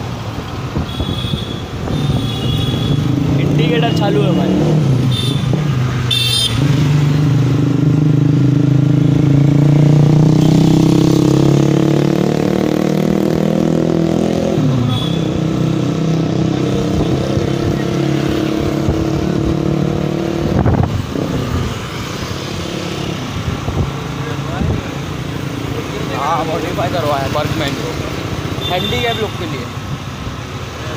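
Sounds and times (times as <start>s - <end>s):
traffic: 0.0s - 30.9s
vehicle engine accelerating: 2.9s - 5.9s, 6.5s - 28.6s.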